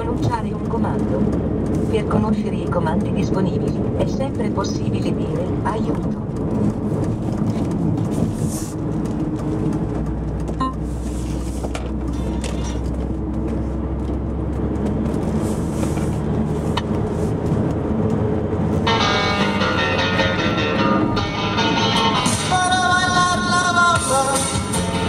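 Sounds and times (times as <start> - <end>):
car engine and tyre drone: 0.0 - 25.0.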